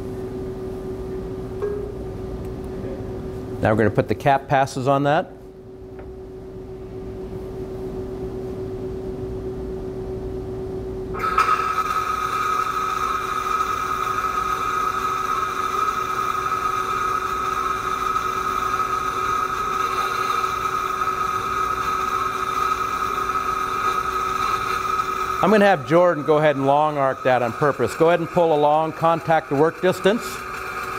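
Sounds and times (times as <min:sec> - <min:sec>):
low steady hum: 0:00.0 - 0:11.2
welding hiss with high whine: 0:11.2 - 0:30.9.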